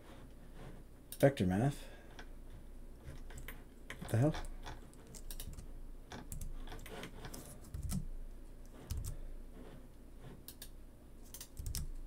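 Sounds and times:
computer keyboard keystrokes: 3.3 - 8.1, 8.8 - 9.2, 11.3 - 12.0.

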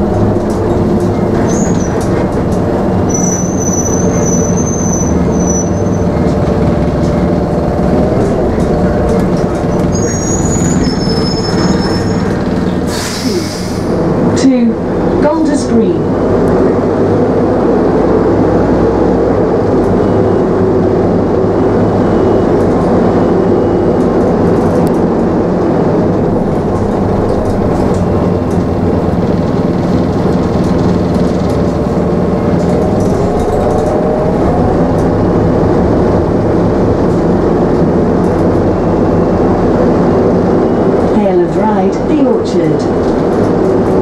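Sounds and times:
bus engine hum: 0.0 - 44.0.

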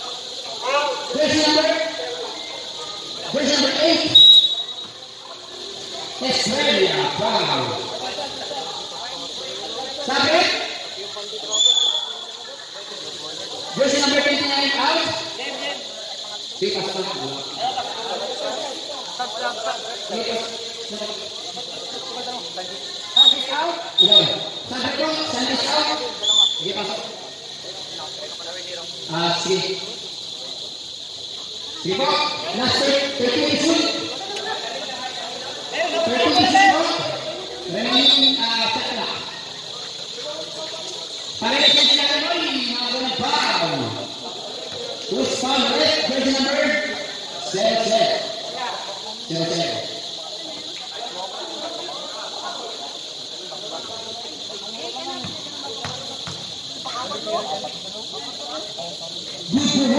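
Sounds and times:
faint crowd voices: 0.0 - 59.9
referee whistle blast: 4.0 - 5.0, 11.5 - 12.3, 23.2 - 24.7, 26.2 - 26.7.

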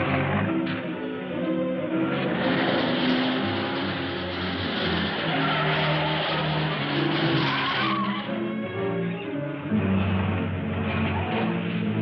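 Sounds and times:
car driving fast: 0.0 - 12.0
dramatic film music: 0.0 - 12.0
tyres squealing: 2.0 - 12.0.

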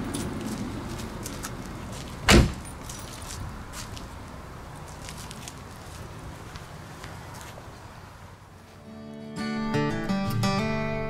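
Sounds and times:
car door shutting: 2.3 - 2.6.

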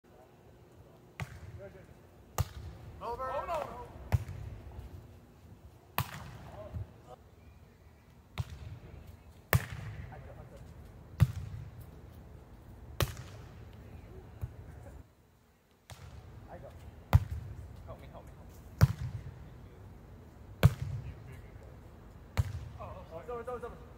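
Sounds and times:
volleyball being struck: 2.4 - 2.8, 3.5 - 4.5, 6.0 - 6.5, 9.5 - 10.0.

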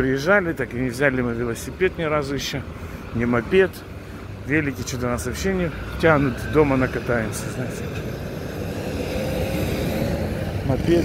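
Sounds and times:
road traffic noise: 0.0 - 11.0
motor scooter engine passing: 5.8 - 11.0.

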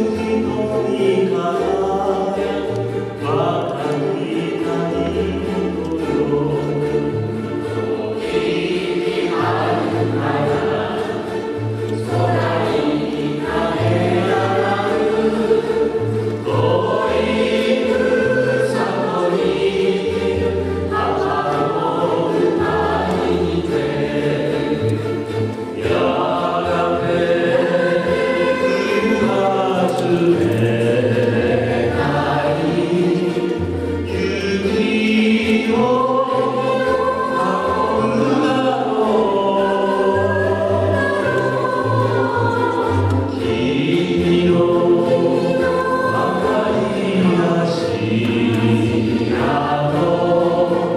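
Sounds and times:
ukulele ensemble playing: 0.0 - 50.9
person singing: 25.8 - 50.9.

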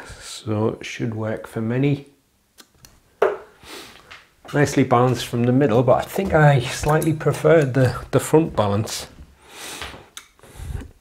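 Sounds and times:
soft hiss: 0.0 - 7.8.

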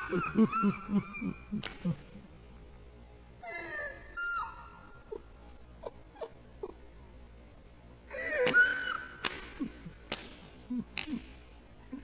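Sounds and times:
young man wailing and sobbing: 0.0 - 2.2, 8.1 - 10.0.

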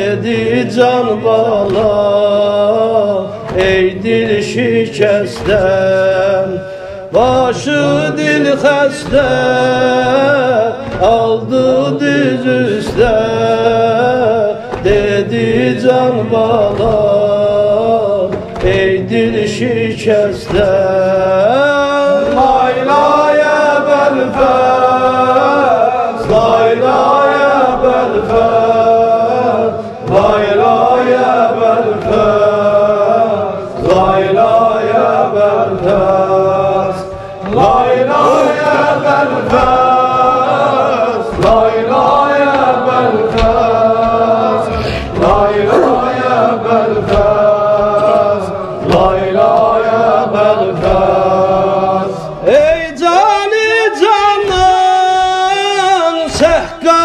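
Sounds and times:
men chanting long held notes: 0.0 - 57.0.

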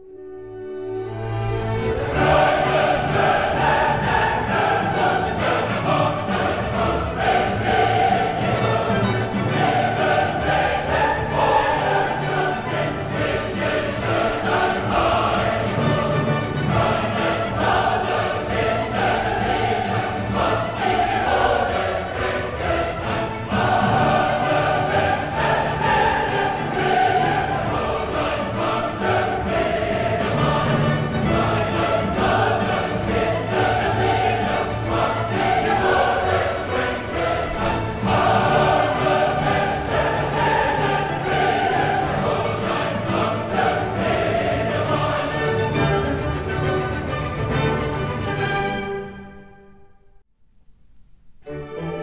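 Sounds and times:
choir singing with orchestra: 0.0 - 50.2.

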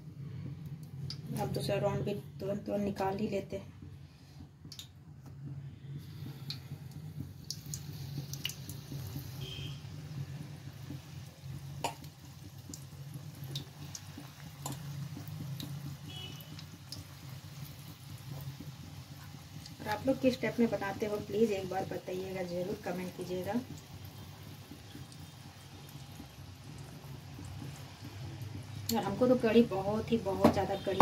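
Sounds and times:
food frying in hot oil: 0.0 - 4.0, 4.7 - 31.0.

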